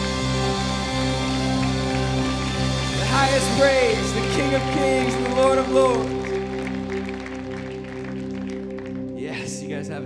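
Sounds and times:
sustained keyboard pad chord: 0:00.0 - 0:10.0
light scattered clapping: 0:01.4 - 0:09.5
man's voice: 0:03.0 - 0:06.5, 0:09.2 - 0:10.0.

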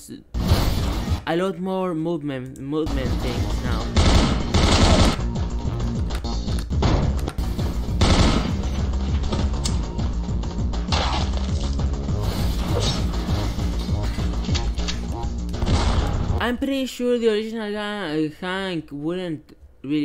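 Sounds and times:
gunshot sound effects: 0:00.4 - 0:01.2, 0:15.6 - 0:16.4.

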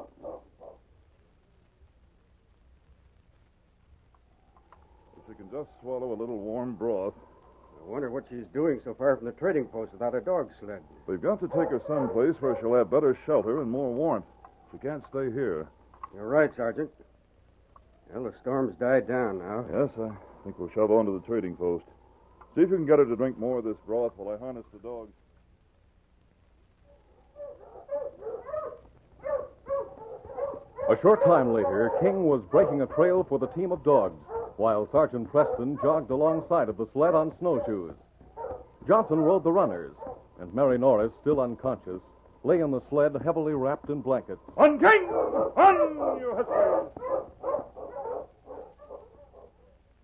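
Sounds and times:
sled dogs yipping and barking: 0:00.0 - 0:00.8, 0:11.2 - 0:13.5, 0:26.9 - 0:40.4, 0:44.6 - 0:49.9.

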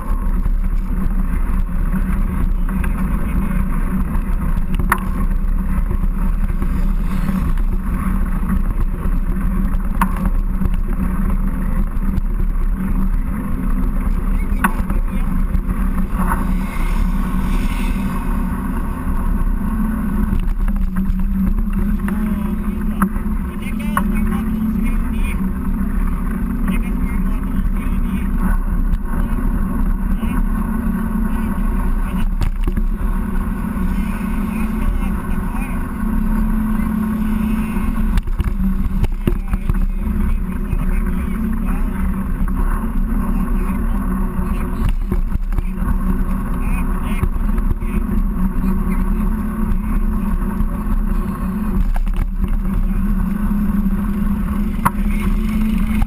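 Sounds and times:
wind rush and rumble: 0:00.0 - 0:56.0.

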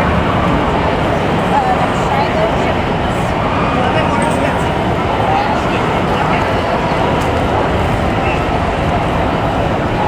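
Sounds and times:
crowd voices in a hall: 0:00.0 - 0:10.0.

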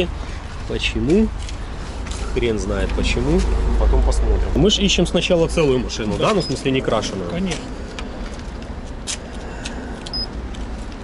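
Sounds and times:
low outdoor rumble: 0:00.0 - 0:11.0.

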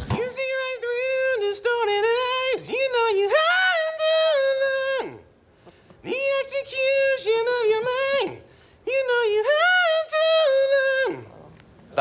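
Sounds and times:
man singing unaccompanied: 0:00.0 - 0:05.3, 0:06.0 - 0:11.3.

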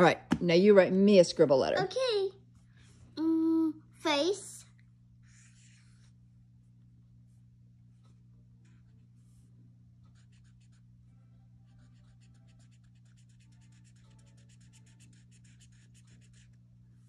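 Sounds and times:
marker scratching on paper: 0:05.3 - 0:06.2, 0:10.1 - 0:10.9, 0:11.7 - 0:16.6.

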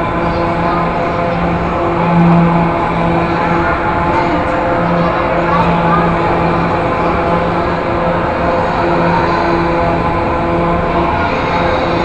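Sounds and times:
carousel mechanical rumble: 0:00.0 - 0:12.0.

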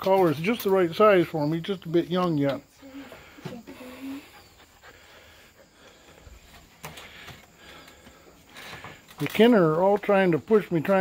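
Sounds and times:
puppy panting: 0:02.9 - 0:08.2.

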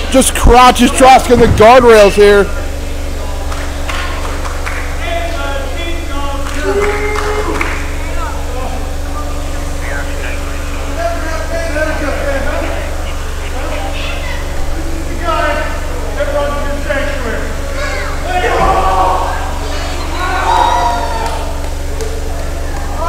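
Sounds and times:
steady low hum: 0:00.0 - 0:23.0
people shouting: 0:17.8 - 0:21.6.

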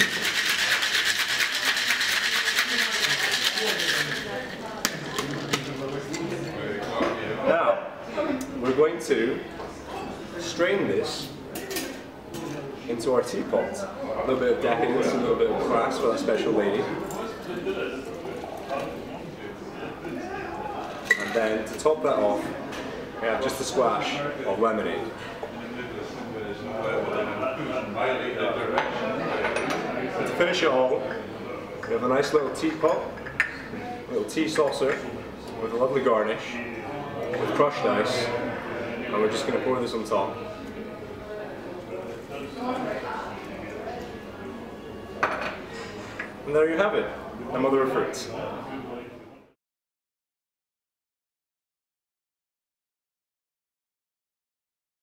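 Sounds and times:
ice rattling in cocktail shaker: 0:00.0 - 0:06.2.

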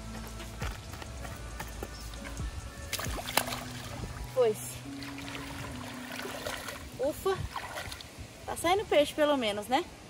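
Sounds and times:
pond water lapping and trickling: 0:01.2 - 0:10.0.

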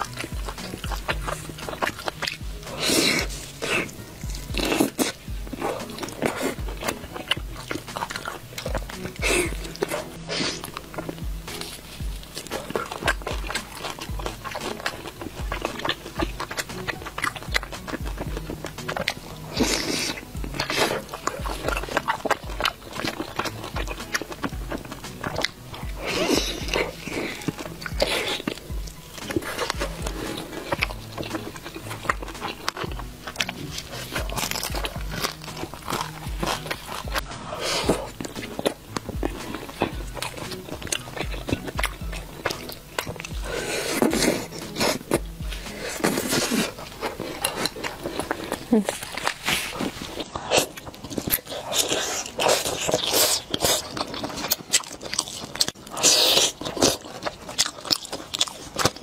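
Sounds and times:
wet mouth clicks and smacks: 0:00.0 - 0:49.4
background music: 0:00.0 - 0:59.0
biting and chewing food: 0:00.0 - 0:59.0.

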